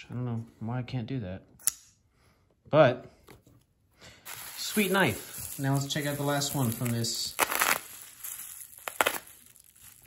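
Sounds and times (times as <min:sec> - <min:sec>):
bubble wrap rustling: 0:04.2 - 0:10.0.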